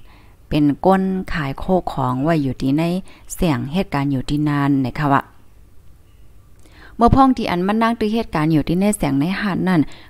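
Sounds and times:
soft breath: 0:00.0 - 0:00.4, 0:06.6 - 0:07.0
faint background hiss: 0:00.0 - 0:10.0
woman narrating: 0:00.5 - 0:05.4, 0:06.9 - 0:10.0.

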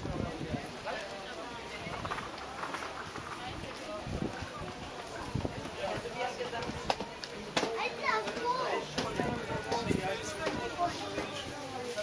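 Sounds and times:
crowd voices: 0:00.0 - 0:12.0
child's high voice: 0:07.8 - 0:08.8.

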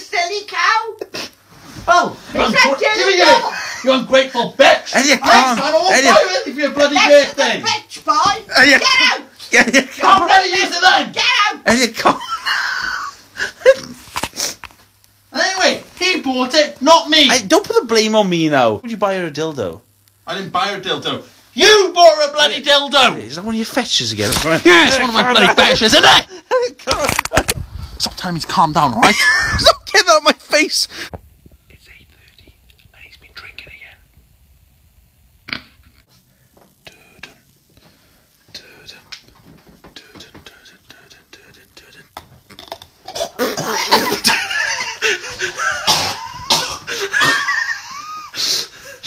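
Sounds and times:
man whispering: 0:31.6 - 0:34.1, 0:36.8 - 0:37.5, 0:38.5 - 0:42.2.

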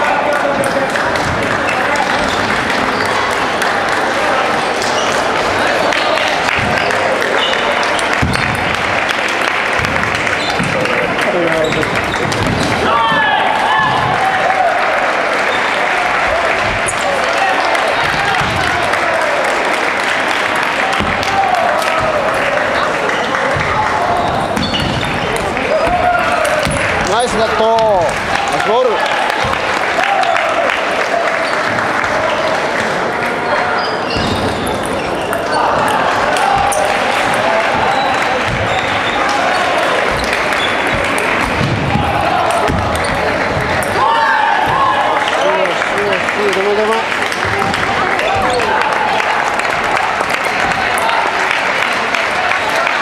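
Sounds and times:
people shouting cheers: 0:00.0 - 0:34.2, 0:34.9 - 0:53.0
crowd chatter in sports hall: 0:00.0 - 0:53.0
people clapping: 0:00.0 - 0:53.0.

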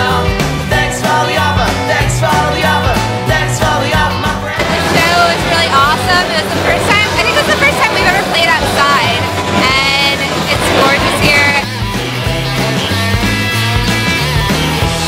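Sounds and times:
rock band playing: 0:00.0 - 0:15.0
person's voice: 0:04.6 - 0:11.6.

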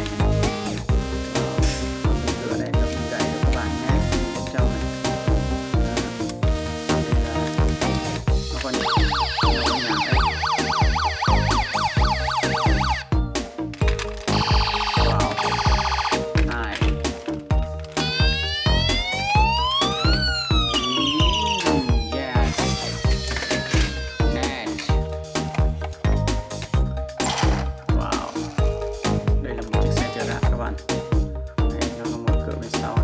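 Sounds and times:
background music with steady beat: 0:00.0 - 0:33.0
toy electronic siren: 0:08.7 - 0:13.1, 0:14.3 - 0:16.3, 0:18.0 - 0:24.6.

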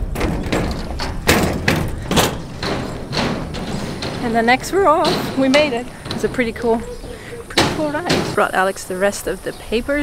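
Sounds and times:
footsteps on gangway: 0:00.0 - 0:09.1.

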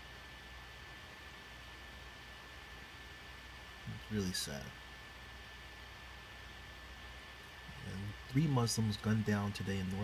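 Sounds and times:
background hiss: 0:00.0 - 0:10.0
high whine: 0:00.0 - 0:10.0
man speaking: 0:03.9 - 0:04.8, 0:07.8 - 0:10.0.

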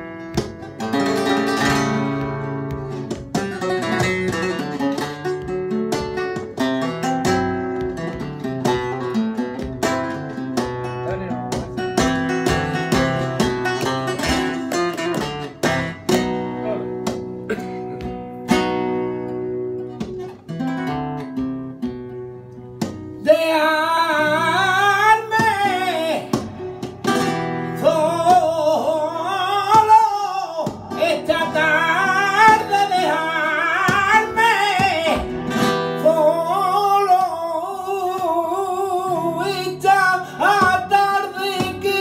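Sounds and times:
man singing flamenco: 0:00.0 - 0:17.2, 0:22.7 - 0:42.0
flamenco guitar playing: 0:00.0 - 0:42.0.

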